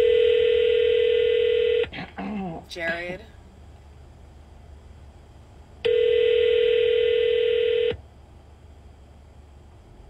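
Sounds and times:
telephone ringback tone: 0:00.0 - 0:01.8, 0:05.9 - 0:08.0.

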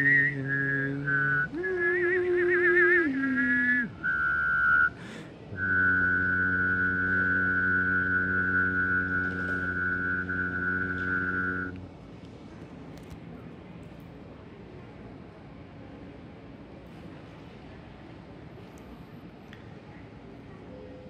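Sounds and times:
person whistling: 0:00.0 - 0:05.0, 0:05.6 - 0:11.8.

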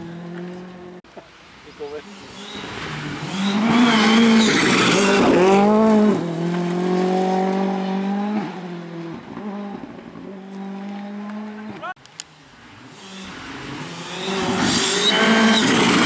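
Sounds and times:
rally car engine at full throttle: 0:00.0 - 0:01.0, 0:02.0 - 0:12.0, 0:12.6 - 0:16.0
gravel and tyres hissing: 0:00.0 - 0:16.0.

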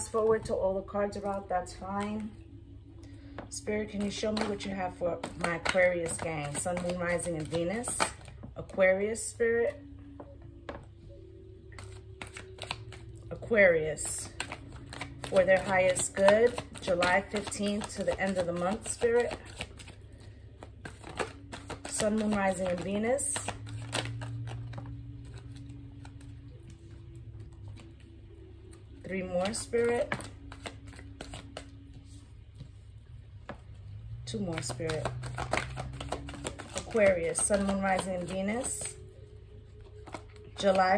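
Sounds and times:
low steady hum: 0:00.0 - 0:40.9
cards being shuffled: 0:03.2 - 0:08.8, 0:11.7 - 0:28.1, 0:29.2 - 0:32.9, 0:34.3 - 0:40.9.

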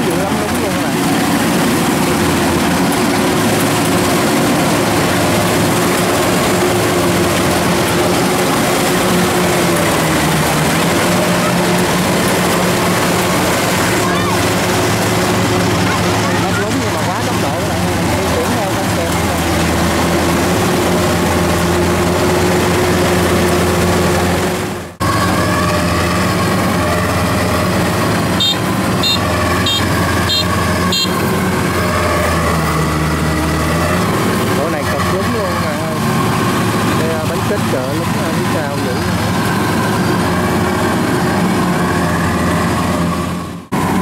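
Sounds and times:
diesel engine running: 0:00.0 - 0:44.0.

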